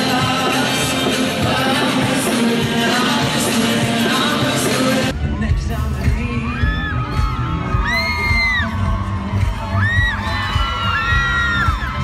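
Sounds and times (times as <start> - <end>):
live pop band playing: 0.0 - 12.0
fans screaming: 6.2 - 12.0.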